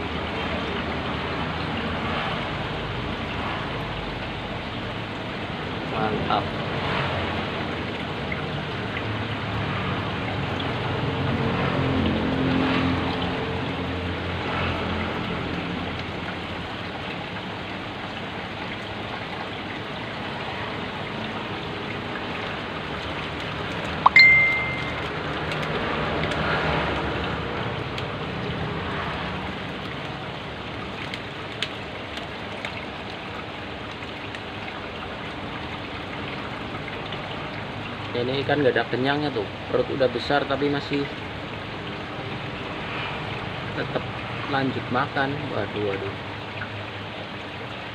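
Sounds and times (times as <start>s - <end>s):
aquarium water trickling and bubbling: 0.0s - 47.9s
short high beep: 24.1s - 25.0s.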